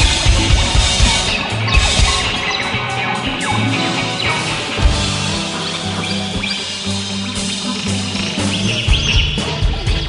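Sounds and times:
bass and drums: 0:00.0 - 0:10.0
electric guitar squeals: 0:00.0 - 0:10.0.

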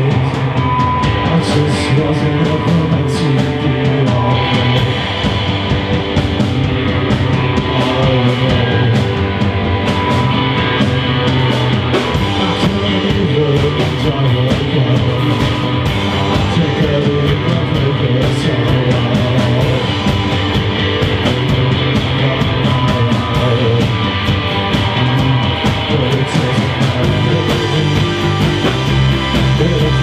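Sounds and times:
drum kit fast beat: 0:00.0 - 0:30.0
electric guitars: 0:00.0 - 0:30.0.

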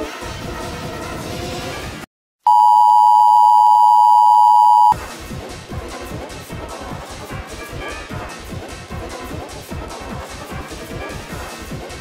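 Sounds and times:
music: 0:00.0 - 0:02.1, 0:05.0 - 0:12.0
electronic alert beep: 0:02.5 - 0:05.0.

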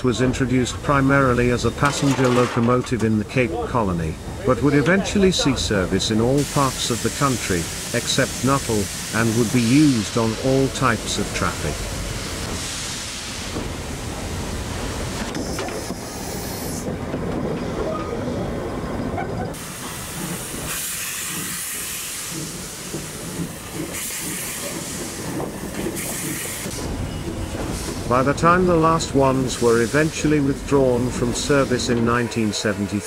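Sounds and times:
steam hissing: 0:05.1 - 0:16.9, 0:19.5 - 0:27.0, 0:27.6 - 0:33.0.

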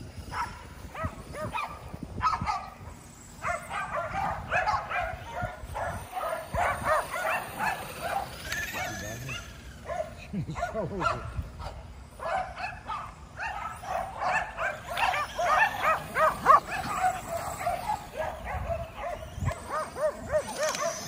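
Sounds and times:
dogs barking and yipping: 0:00.0 - 0:21.0.

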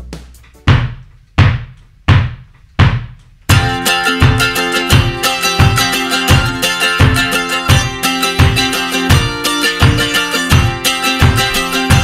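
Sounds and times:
hard drum hits with cymbal crash: 0:03.5 - 0:12.0.

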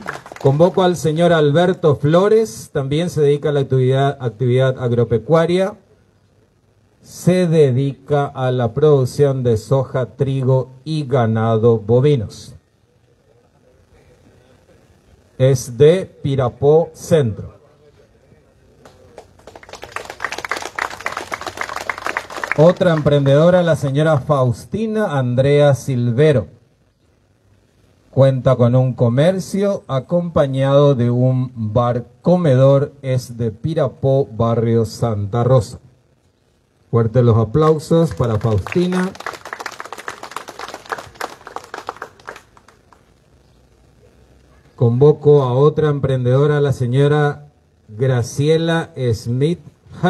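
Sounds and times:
people clapping: 0:00.0 - 0:01.0, 0:18.8 - 0:23.6, 0:37.6 - 0:43.1
small crowd applauding: 0:00.0 - 0:01.1, 0:18.8 - 0:23.6, 0:37.6 - 0:43.2.

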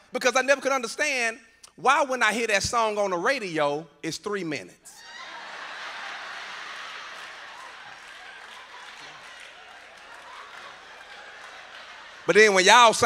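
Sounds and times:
audience laughing: 0:05.0 - 0:13.0
people clapping: 0:05.1 - 0:13.0.

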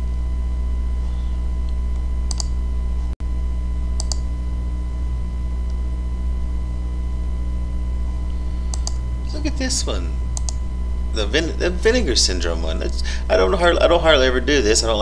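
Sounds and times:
low electrical hum: 0:00.0 - 0:15.0
computer mouse clicks: 0:02.3 - 0:02.6, 0:04.0 - 0:04.3, 0:08.6 - 0:09.0, 0:10.3 - 0:10.6.

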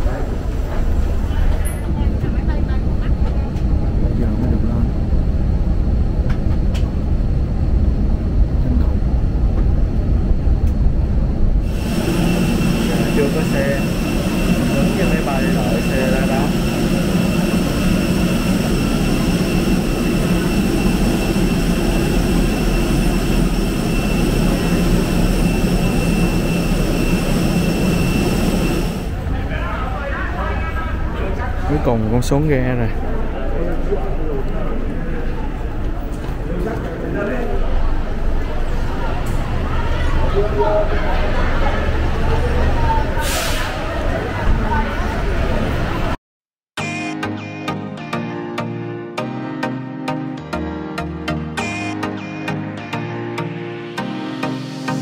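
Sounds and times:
low rumble: 0:00.0 - 0:31.8
jet engine whine and hum: 0:00.0 - 0:46.2.

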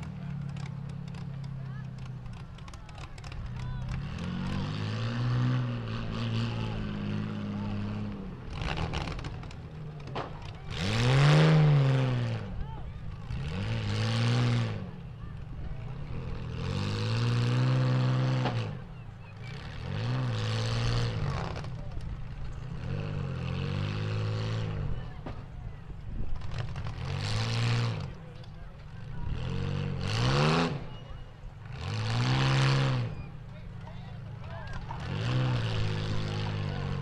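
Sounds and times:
car engines revving hard: 0:00.0 - 0:37.0.

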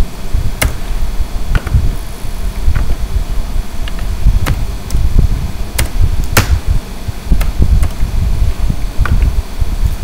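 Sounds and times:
uneven low rumble: 0:00.0 - 0:10.0.

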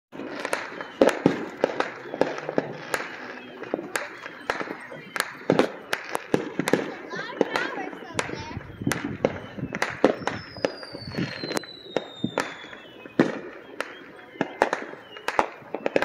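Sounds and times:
distant fireworks crackle: 0:00.1 - 0:16.0
fireworks bangs and pops: 0:00.1 - 0:16.0.

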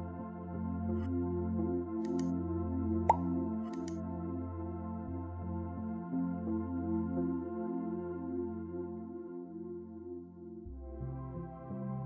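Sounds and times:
slow ambient music: 0:00.0 - 0:12.0.

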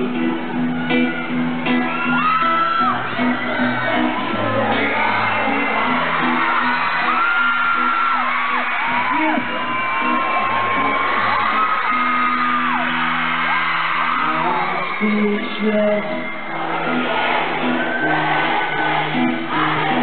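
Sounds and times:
crowd screaming and whooping: 0:00.0 - 0:20.0
live pop-rock band playing: 0:00.0 - 0:20.0.

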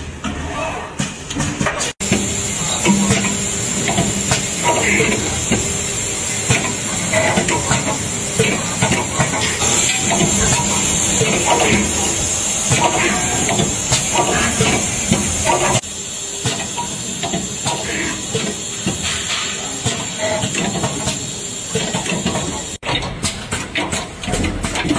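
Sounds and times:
machine hiss: 0:02.0 - 0:22.8
mechanical clicks and knocks: 0:06.5 - 0:15.8, 0:16.4 - 0:24.9.

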